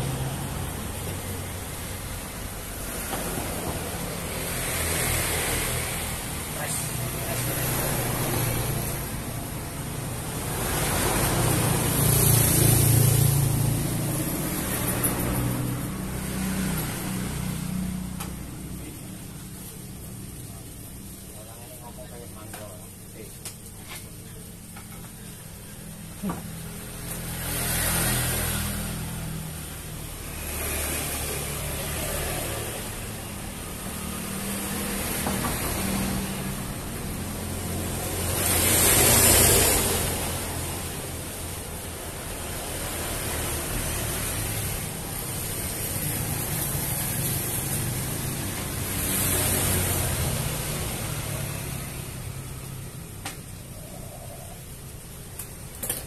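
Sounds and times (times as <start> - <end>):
vehicles passing by: 0.0 - 56.0.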